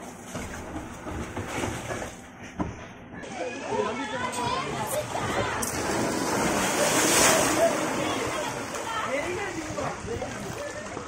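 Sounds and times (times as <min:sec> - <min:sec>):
water rushing along a slide: 0:03.3 - 0:11.0.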